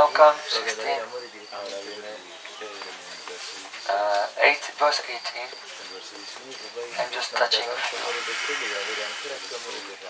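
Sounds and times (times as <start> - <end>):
rustling hiss: 0.0 - 10.0
person murmuring quietly: 5.3 - 10.0.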